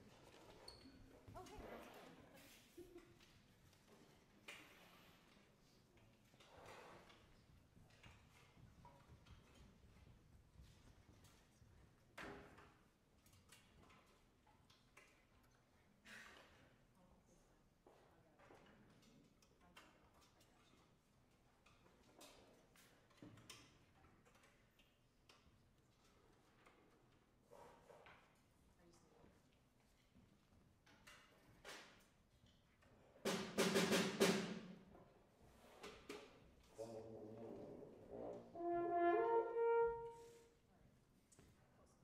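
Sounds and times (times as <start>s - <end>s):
faint clicks and rustles: 0.0s - 33.1s.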